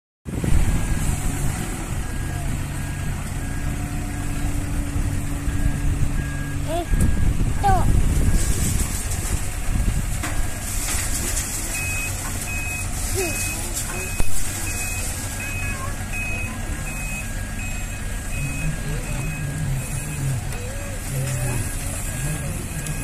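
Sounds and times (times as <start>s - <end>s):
diesel engine under load: 0.3s - 23.0s
reversing alarm beeping: 0.6s - 9.0s, 10.2s - 23.0s.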